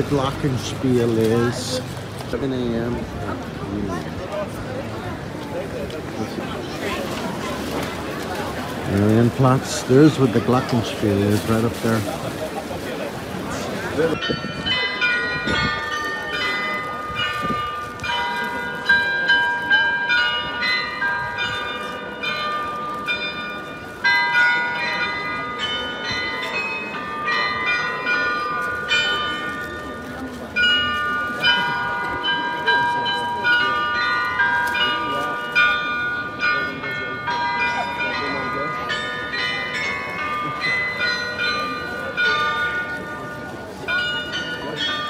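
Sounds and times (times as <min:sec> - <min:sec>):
glockenspiel bells playing a tune: 0:14.1 - 0:45.0.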